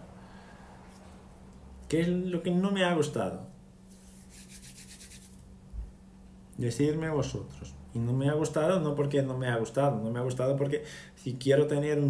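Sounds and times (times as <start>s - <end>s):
hands rubbing near microphone: 3.9s - 5.4s.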